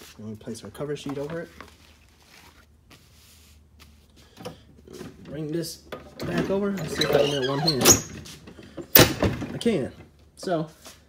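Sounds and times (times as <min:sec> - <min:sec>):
hand rubbing a sheet: 0:01.3 - 0:04.2.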